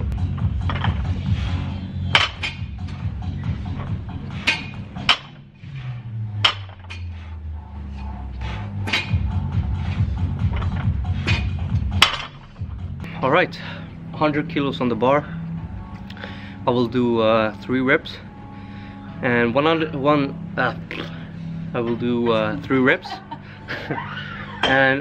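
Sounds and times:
background music with bass: 0.0 - 25.0
barbell plates clanking: 0.3 - 7.2, 8.8 - 12.6.

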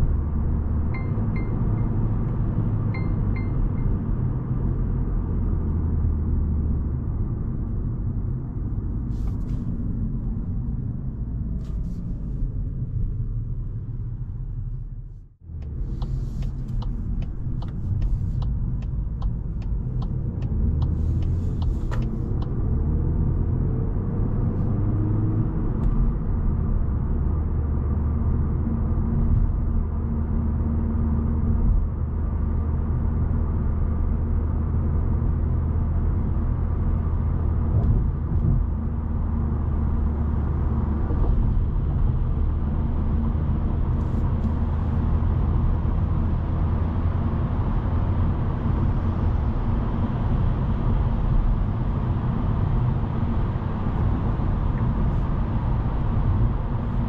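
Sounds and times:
car engine humming: 0.0 - 27.0, 36.2 - 57.0
tyre road rumble: 0.0 - 57.0.

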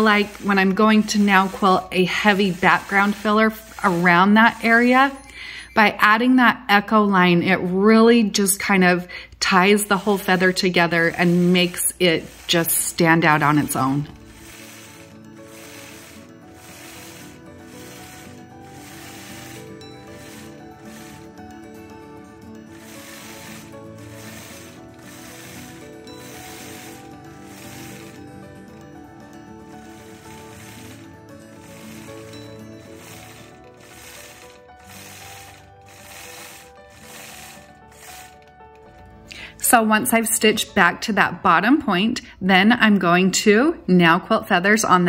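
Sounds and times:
quilting machine needle clattering: 9.8 - 21.4, 22.7 - 28.9, 29.6 - 39.1.

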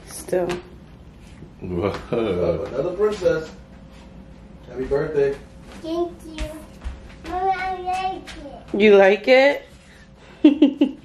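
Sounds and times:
child speaking: 5.8 - 8.7.

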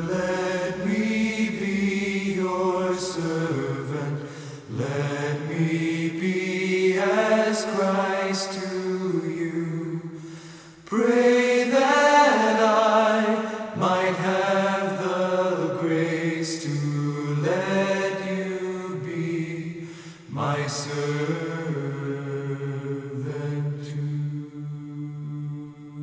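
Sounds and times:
vocal group singing chords: 0.0 - 26.0.

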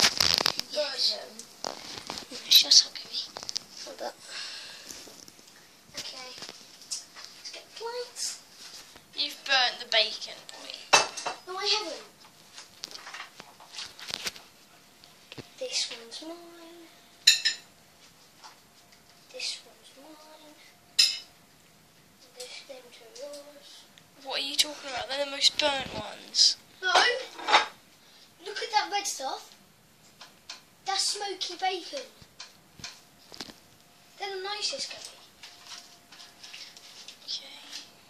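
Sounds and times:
faint steady hum: 0.0 - 38.0.

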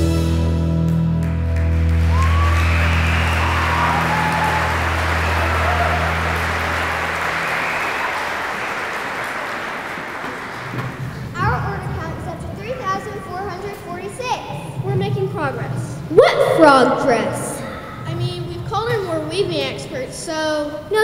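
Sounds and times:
audience applause: 1.2 - 11.4
audience cheering: 1.6 - 11.2.

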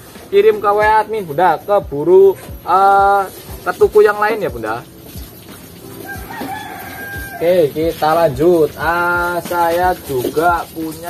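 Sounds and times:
rooster crowing: 5.9 - 7.6.

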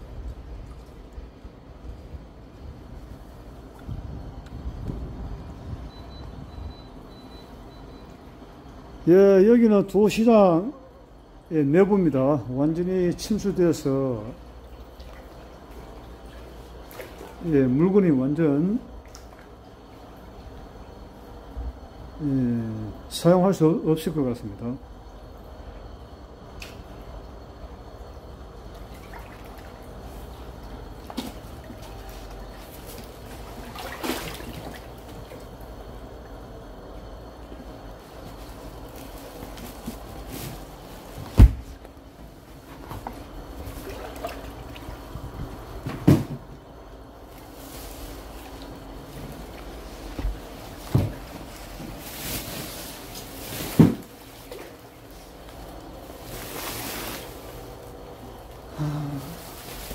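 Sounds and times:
water sloshing and trickling: 0.0 - 9.0, 11.0 - 21.9, 24.9 - 58.7
person wading through water: 14.7 - 17.4, 28.7 - 35.6, 43.7 - 45.3.

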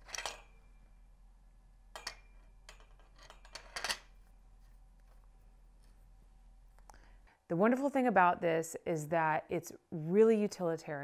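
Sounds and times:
metal stand clinking and clanking: 0.0 - 0.8, 1.9 - 4.2.

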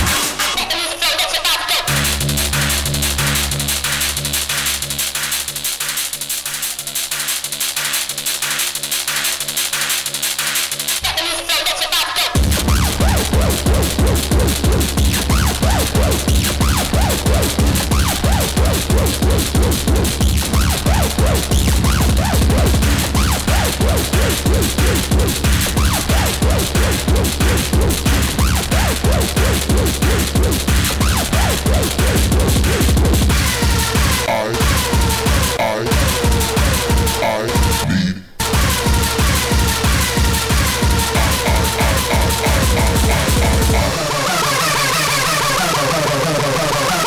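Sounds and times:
held bass chords: 1.9 - 5.2, 12.4 - 44.9
fast pounding kick drum: 12.4 - 44.2
light ticking beat: 38.8 - 44.0.

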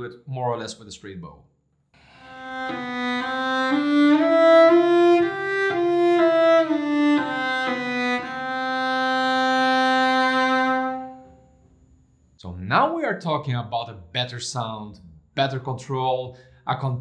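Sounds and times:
bowed cello notes: 2.0 - 11.5.

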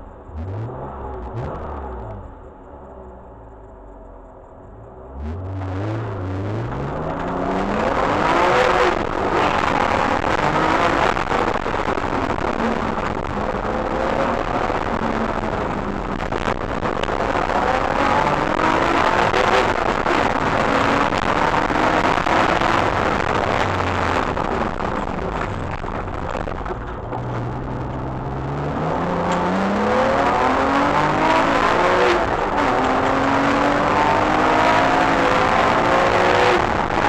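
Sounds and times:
race car engine accelerating: 4.9 - 37.0.

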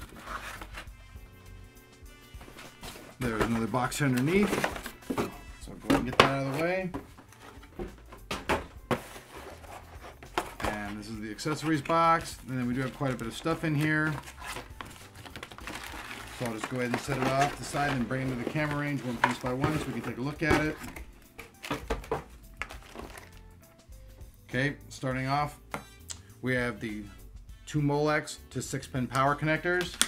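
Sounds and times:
cardboard box scraping: 0.0 - 0.9, 8.9 - 11.8
plastic bags rustling and clicking: 2.7 - 23.4.

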